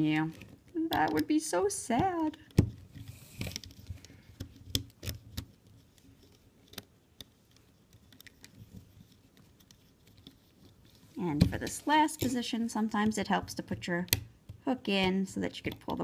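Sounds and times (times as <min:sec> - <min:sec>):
fingers clicking rubber bands off pegs: 0:01.9 - 0:08.6, 0:13.0 - 0:16.0.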